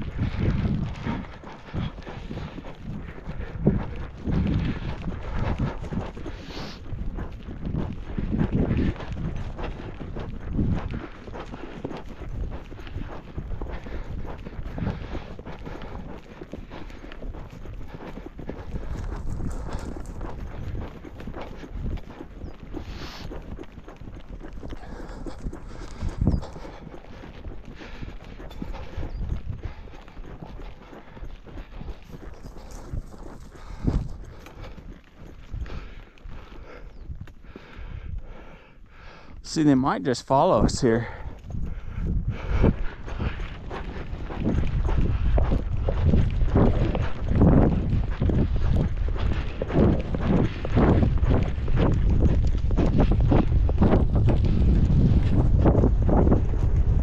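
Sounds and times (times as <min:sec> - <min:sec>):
horse hoofbeats on dirt: 0:00.0 - 0:57.0.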